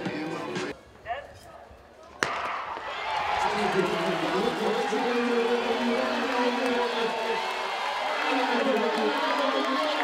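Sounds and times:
background music: 0.0 - 0.8
crowd noise: 0.0 - 10.0
people talking: 3.4 - 7.4, 8.2 - 10.0.

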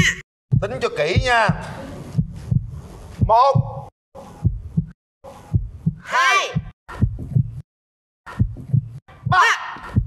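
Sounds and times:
heartbeat double thumps: 0.5 - 7.7, 8.3 - 10.0.

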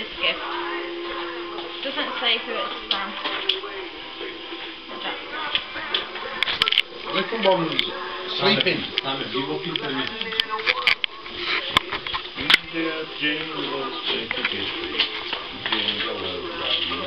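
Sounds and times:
voices talking: 0.0 - 17.0.

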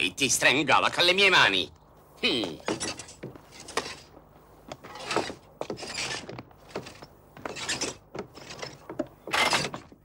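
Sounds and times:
knocks and creaks of car body: 2.6 - 10.0.

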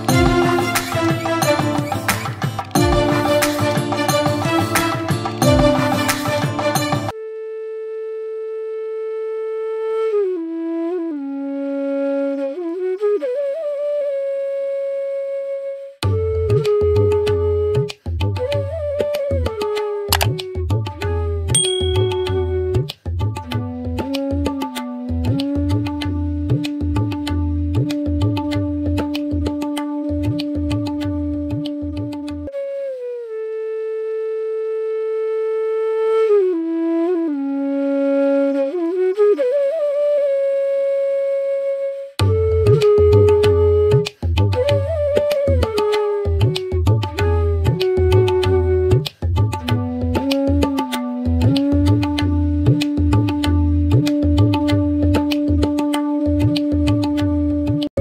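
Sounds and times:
flute holding long note: 2.8 - 22.9, 30.6 - 58.0.

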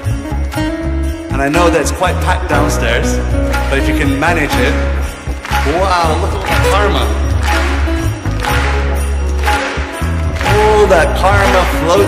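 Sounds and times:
percussion strokes: 0.0 - 12.0.

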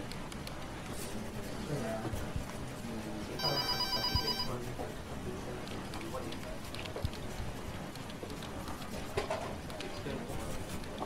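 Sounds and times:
telephone ringing: 3.4 - 4.6.

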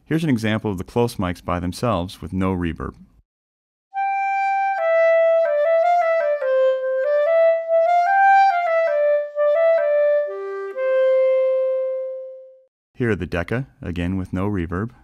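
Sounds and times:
clarinet playing legato melody: 3.9 - 12.7.

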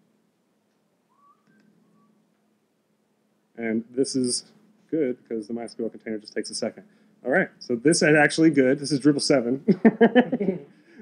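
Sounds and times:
faint low hum: 0.0 - 11.0
faint whistle-like tones: 1.0 - 2.4.

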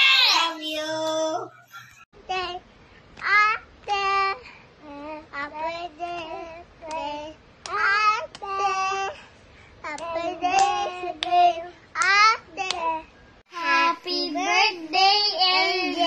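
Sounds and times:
young children singing: 0.0 - 2.0.

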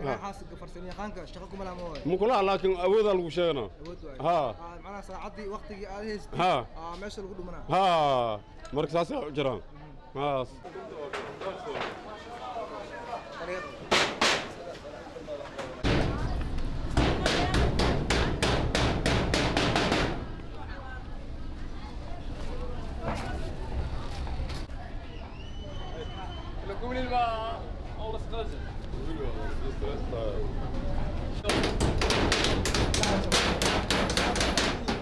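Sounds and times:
hammer striking sheet metal: 13.9 - 14.6, 15.8 - 16.3, 17.0 - 20.3, 31.4 - 35.0.

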